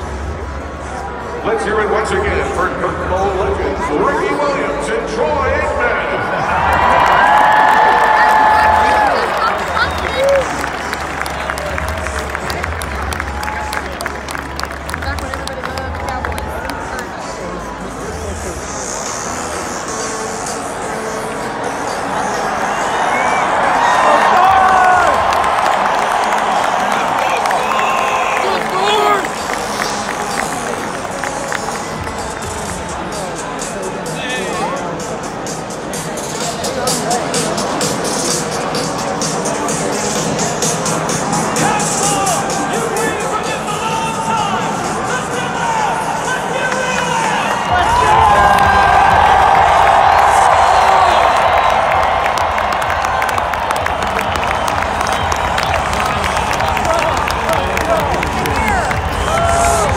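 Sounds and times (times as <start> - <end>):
music over loudspeakers: 0.0 - 59.9
crowd cheering and clapping: 6.1 - 17.5, 21.0 - 33.8, 36.2 - 59.9
voice over loudspeakers: 26.8 - 35.4, 41.2 - 49.2.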